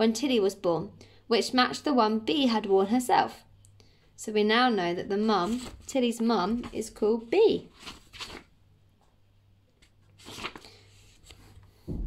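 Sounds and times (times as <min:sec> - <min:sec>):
faint steady hum: 0:00.0 - 0:12.0
book pages rustling: 0:05.3 - 0:08.5, 0:09.7 - 0:11.8.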